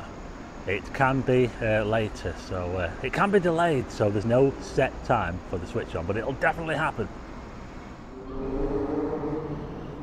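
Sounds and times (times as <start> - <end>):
town traffic: 0.0 - 10.0.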